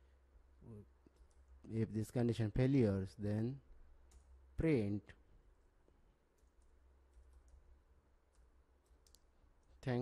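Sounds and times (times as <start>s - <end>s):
low steady hum: 0.0s - 10.0s
keyboard keys clicking: 8.3s - 9.8s.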